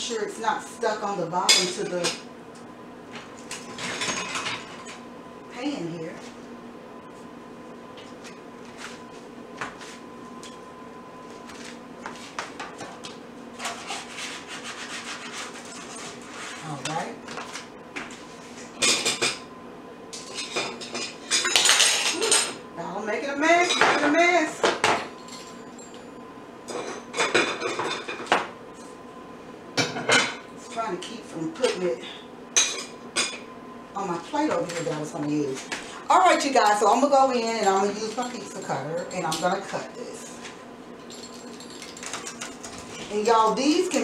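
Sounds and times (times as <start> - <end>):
metal spatula scraping baking pan: 13.6 - 16.9.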